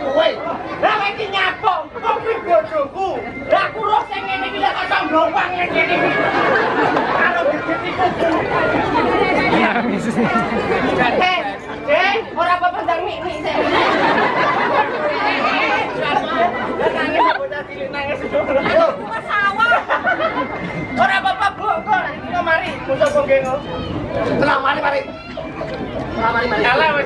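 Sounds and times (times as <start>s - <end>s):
crowd chatter: 0.0s - 27.0s
people talking over one another: 0.0s - 27.0s.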